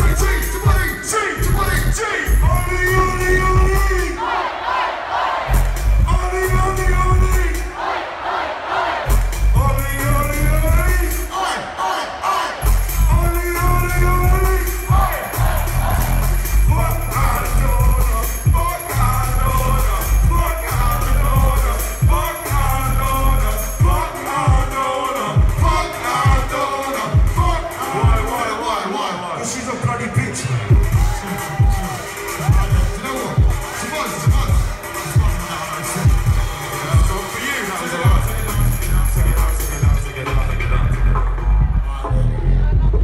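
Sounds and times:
crowd shouting and singing: 0:00.0 - 0:43.0
loud dance music over pa: 0:00.0 - 0:43.0.

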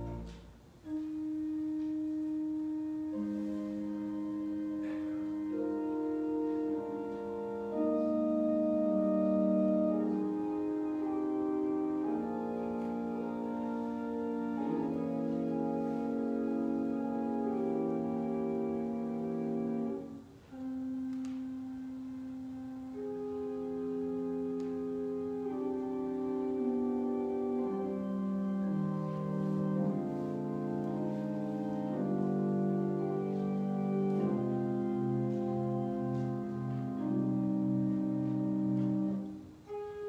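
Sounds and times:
pipe organ holding a note: 0:00.0 - 0:40.0.

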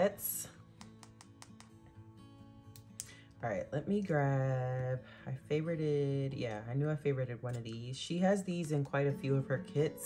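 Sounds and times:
faint guitar-like background music: 0:00.0 - 0:10.0
stylus tapping glass screen: 0:00.8 - 0:01.8.

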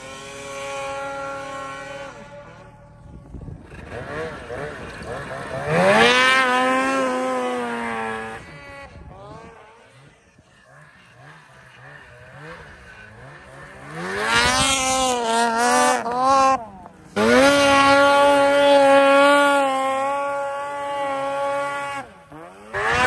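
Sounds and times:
snowmobile engines revving: 0:00.0 - 0:23.0.

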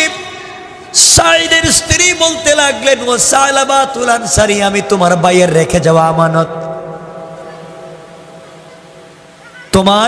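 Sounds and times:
echo of man's voice through pa: 0:00.0 - 0:08.2, 0:09.6 - 0:10.0.

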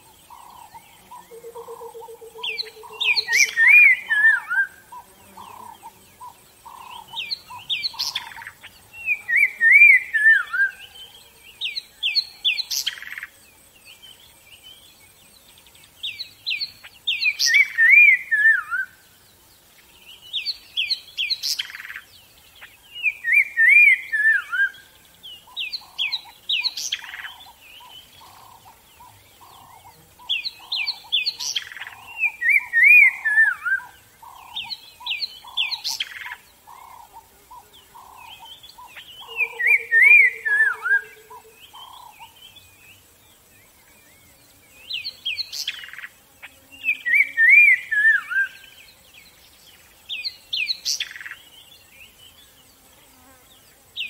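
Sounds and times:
songbirds chirping: 0:00.0 - 0:54.0.

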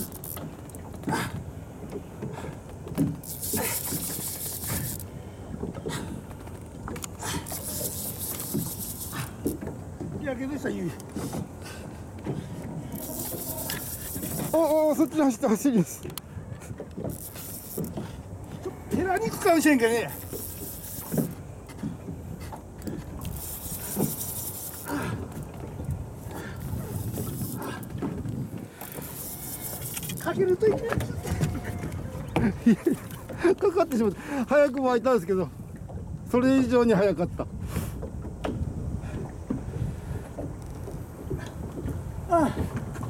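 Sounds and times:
water noise: 0:00.0 - 0:43.0
wind: 0:00.0 - 0:43.0
wind rumble buffeting microphone: 0:25.0 - 0:33.4, 0:35.6 - 0:43.0.

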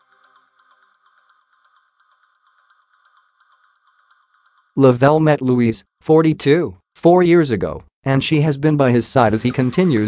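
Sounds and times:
faint electronic background music: 0:00.0 - 0:05.4, 0:09.1 - 0:10.0.

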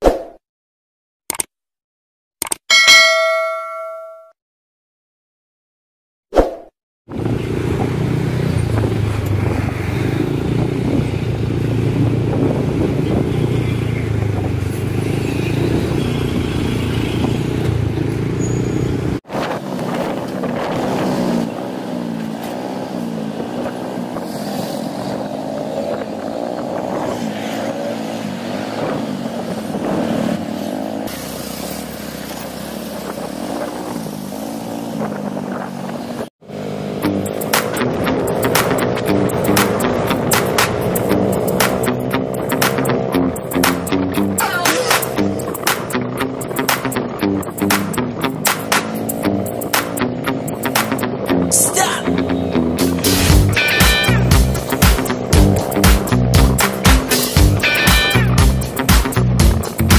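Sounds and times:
short swish: 0:06.3 - 0:06.7
motorcycle engine: 0:07.1 - 0:59.9
road noise: 0:07.1 - 0:59.9.

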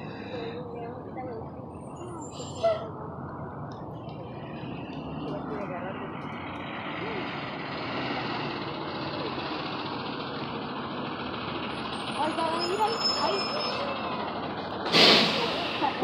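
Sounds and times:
bus engine running: 0:00.0 - 0:16.0.

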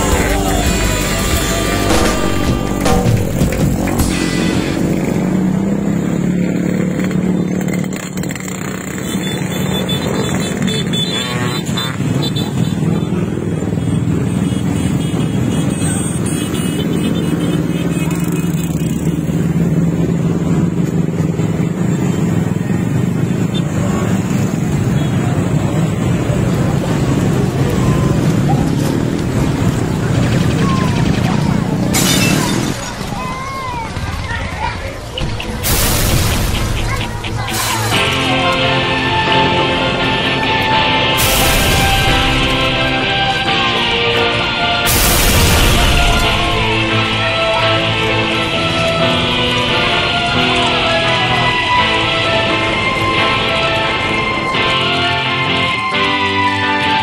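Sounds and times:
motorcycle engines droning: 0:00.0 - 0:57.0.

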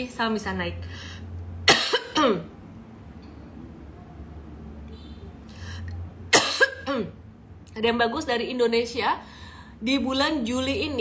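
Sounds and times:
woman coughing: 0:01.7 - 0:02.5, 0:06.3 - 0:07.2.

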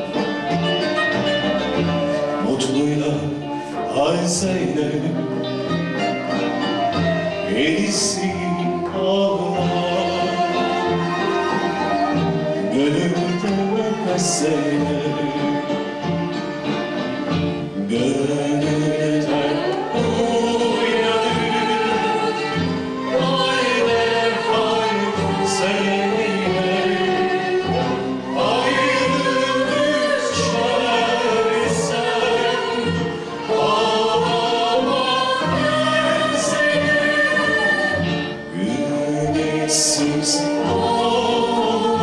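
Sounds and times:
plucked string ensemble: 0:00.0 - 0:42.0
man singing lead: 0:01.8 - 0:05.7, 0:06.9 - 0:16.0, 0:17.8 - 0:42.0
female chorus singing: 0:19.3 - 0:42.0.

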